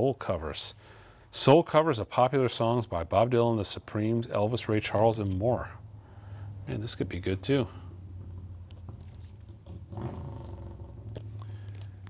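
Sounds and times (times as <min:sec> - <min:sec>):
steady low hum: 0:02.7 - 0:12.0.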